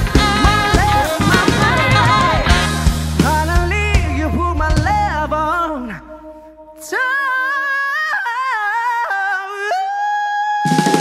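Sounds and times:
person singing unaccompanied: 0.0s - 6.2s.

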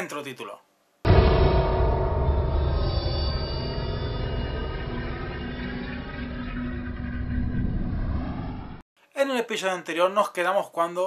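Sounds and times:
dark low rumbling drone: 1.1s - 8.8s
sustained tones: 1.1s - 8.8s.

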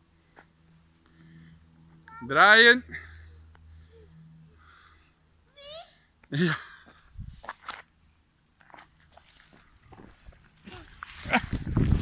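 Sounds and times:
wind rumble: 11.3s - 12.0s.

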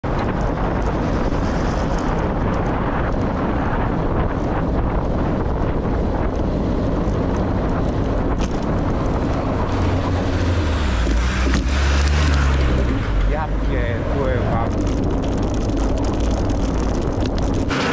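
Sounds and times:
bicycle road noise: 0.0s - 17.9s
truck engine rumble: 0.0s - 17.9s
wind buffeting microphone: 0.0s - 17.9s.

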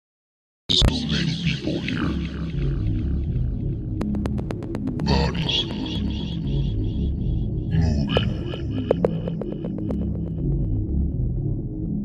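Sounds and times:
processed voice-like texture: 0.7s - 3.3s, 5.0s - 10.5s
deep bass drone: 0.8s - 12.0s.

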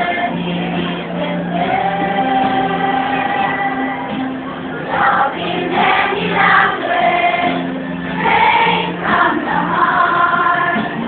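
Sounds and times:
choir singing: 0.0s - 11.0s
music: 0.0s - 11.0s.

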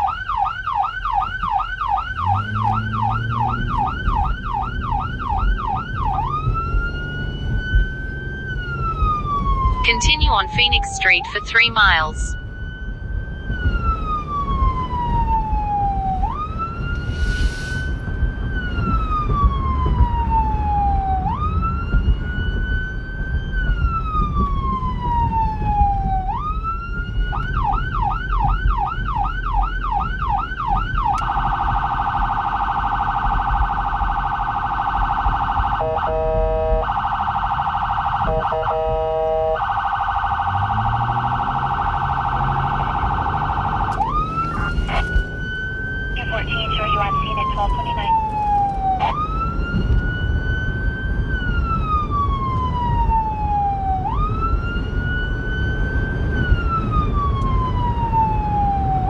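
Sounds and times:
electronic siren wailing and yelping: 0.0s - 7.3s, 8.5s - 12.4s, 25.0s - 50.8s
vehicle road and engine noise: 0.0s - 59.0s.

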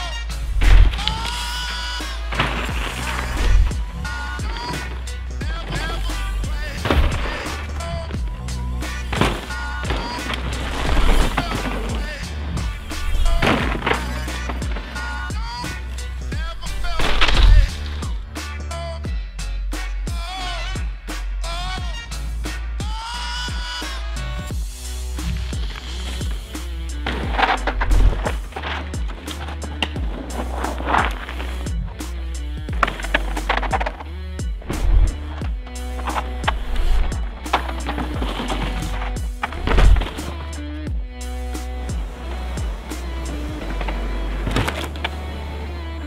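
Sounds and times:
loud sudden crunches: 0.0s - 18.4s, 24.5s - 40.9s, 41.5s - 46.0s
bike tyres rolling and skidding: 0.0s - 18.8s, 23.8s - 46.0s
music with steady bass line: 0.0s - 46.0s.

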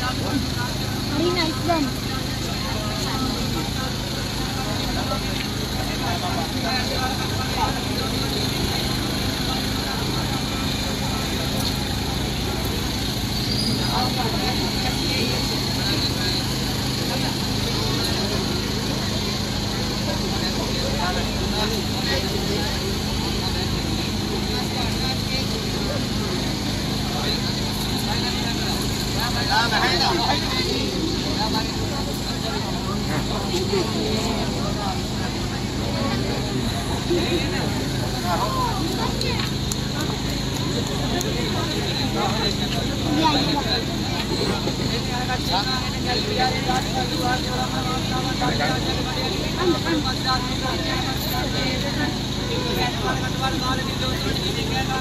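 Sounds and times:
low mechanical hum: 0.0s - 55.0s
people talking: 0.0s - 55.0s.

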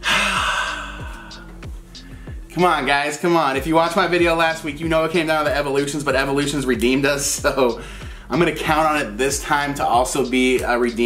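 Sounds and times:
man sighing: 0.0s - 2.5s
background music with falling bass: 0.0s - 11.0s.

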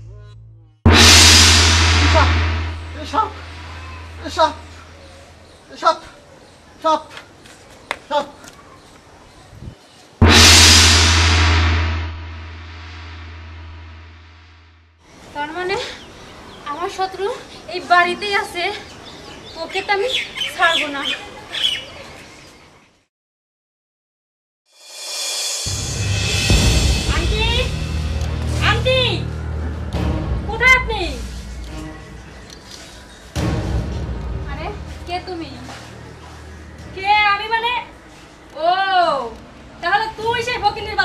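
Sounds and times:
faint outdoor background: 0.0s - 23.1s, 24.7s - 41.0s
dramatic crash sound effect: 0.9s - 5.3s, 10.2s - 14.7s, 25.2s - 32.4s
deep rumble: 0.9s - 5.4s, 10.2s - 14.7s, 25.8s - 32.5s
bird chirping: 31.4s - 33.4s.

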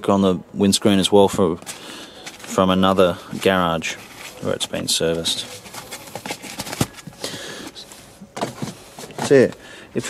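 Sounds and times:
rustling: 1.5s - 10.0s.

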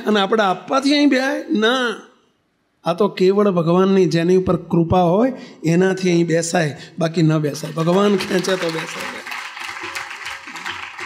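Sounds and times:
audience clapping: 7.5s - 11.0s.

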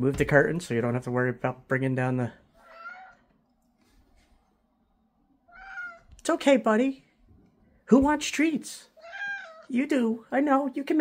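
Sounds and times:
cat meowing: 2.6s - 3.4s, 5.5s - 6.2s, 9.0s - 9.7s.

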